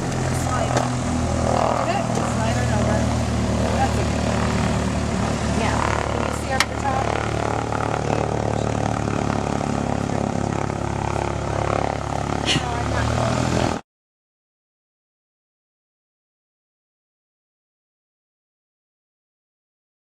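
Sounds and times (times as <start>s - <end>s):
aircraft engine and propeller running: 0.0s - 13.8s.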